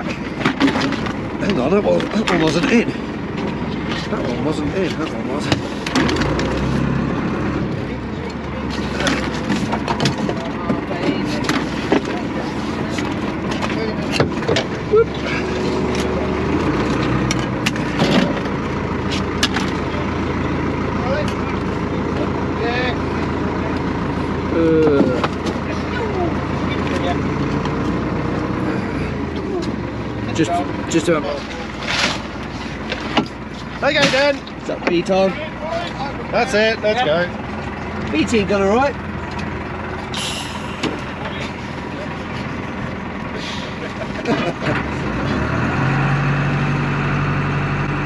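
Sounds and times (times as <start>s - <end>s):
muffled voices: 0.0s - 17.0s, 19.7s - 39.0s, 40.0s - 44.7s
boat engine hum: 0.0s - 48.0s.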